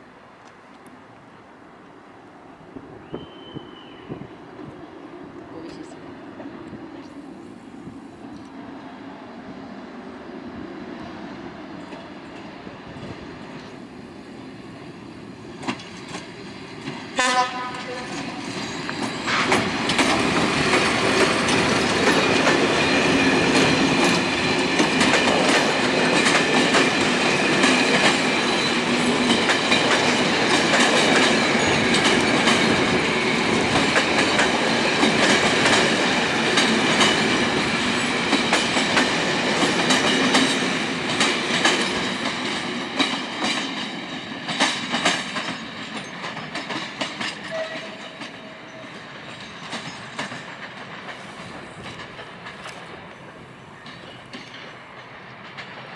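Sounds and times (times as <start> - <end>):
train rolling past: 0.0 - 55.9
wheels clicking over rail joints: 14.7 - 55.9.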